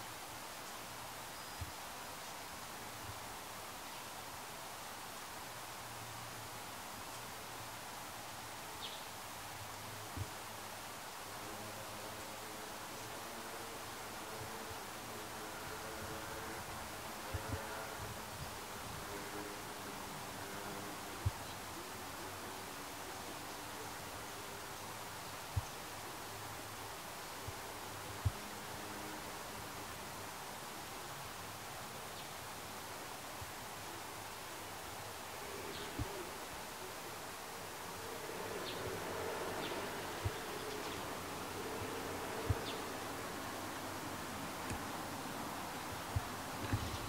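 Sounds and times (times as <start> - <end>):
flying insect buzzing: 11.2 - 32.2, 33.2 - 47.0
soft dull low thumps: 46.1 - 47.0.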